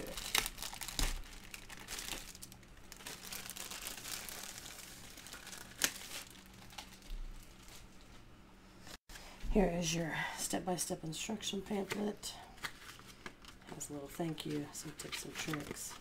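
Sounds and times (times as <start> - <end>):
packaging rustling and crinkling: 0.0 - 8.2.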